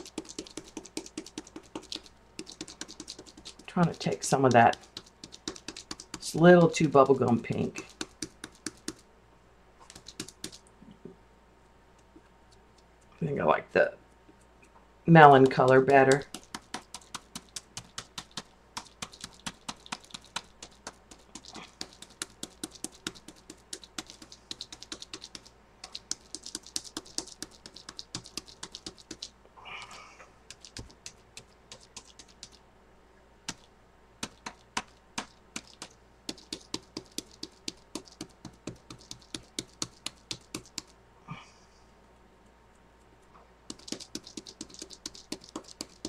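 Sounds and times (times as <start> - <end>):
rapid light tapping: 0.0 - 9.0, 9.8 - 11.2, 15.3 - 29.3, 30.5 - 32.6, 33.5 - 41.0, 43.7 - 46.0.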